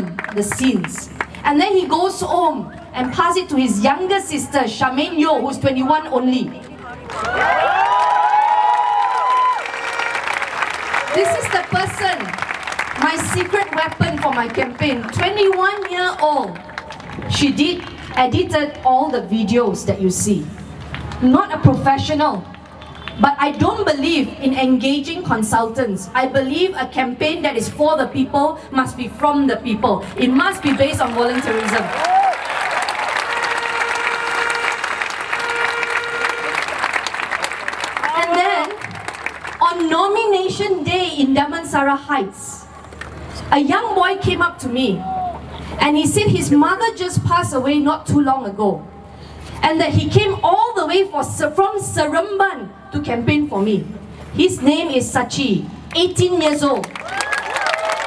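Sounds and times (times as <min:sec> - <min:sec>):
clapping: 0:00.0 - 0:01.4, 0:06.8 - 0:18.2, 0:30.6 - 0:39.9, 0:56.8 - 0:58.0
crowd cheering and whooping: 0:07.1 - 0:11.7, 0:30.7 - 0:39.2, 0:57.0 - 0:58.0.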